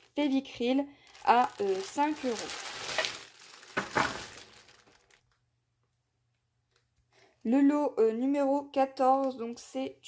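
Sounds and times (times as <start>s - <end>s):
plastic bag crinkling: 0.0s - 5.4s.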